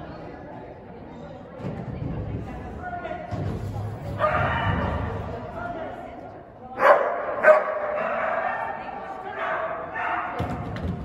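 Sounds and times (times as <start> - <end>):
dog barking: 6.8 - 8.8, 9.4 - 10.4.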